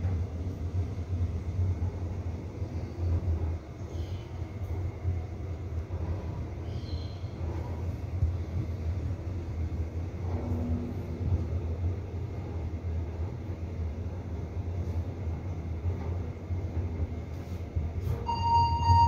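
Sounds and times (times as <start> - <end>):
elevator hum and rumble: 0.0 - 19.0
electronic beep: 18.3 - 19.0.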